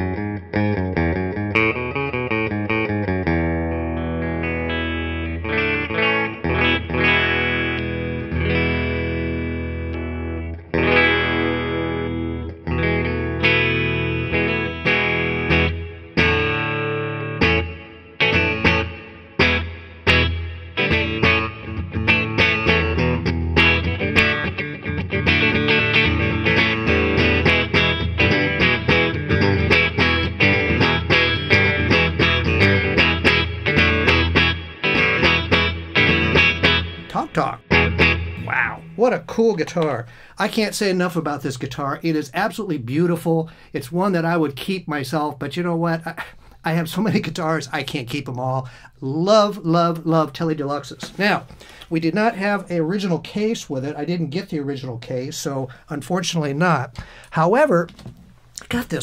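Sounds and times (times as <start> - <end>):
electric guitar chords: 0.0 - 40.4.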